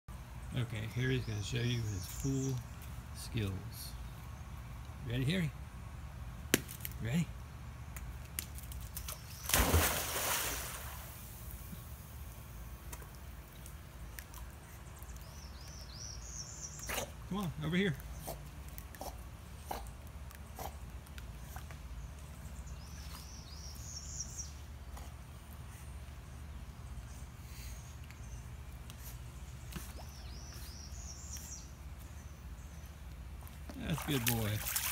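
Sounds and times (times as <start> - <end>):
steady low hum: 0.1 - 34.9
faint water sloshing: 8.5 - 15.5, 31.9 - 34.9
dog splashing into pool: 8.6 - 11.5, 33.8 - 34.9.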